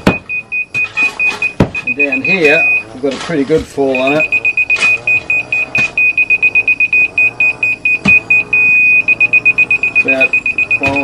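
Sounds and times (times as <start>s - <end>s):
laser receiver beeping: 0.0s - 3.1s, 3.8s - 11.0s
continuous receiver tone: 0.0s - 11.0s.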